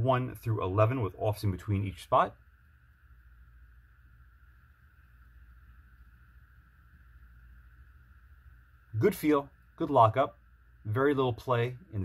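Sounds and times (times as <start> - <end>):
low hum: 0.0 - 12.0
thin even whine: 0.0 - 12.0.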